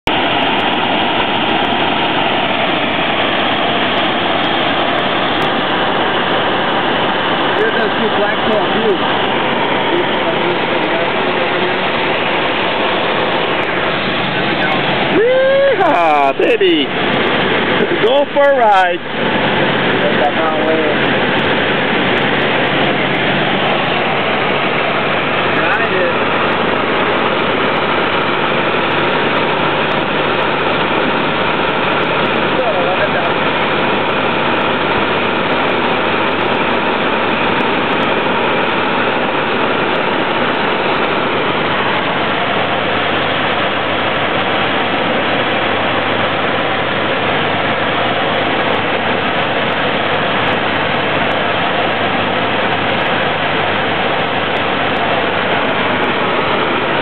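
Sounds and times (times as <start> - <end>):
airplane engine and propeller droning: 0.0 - 57.0.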